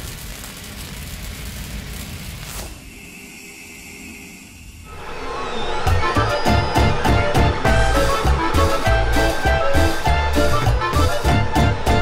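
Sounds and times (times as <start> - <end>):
sweeping whoosh: 2.5 - 8.9
music with a beat: 6.5 - 12.0.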